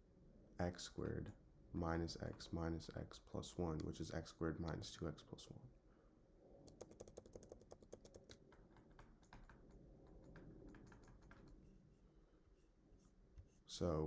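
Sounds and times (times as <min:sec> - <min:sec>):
stylus tapping on pen tablet: 0:06.7 - 0:11.7.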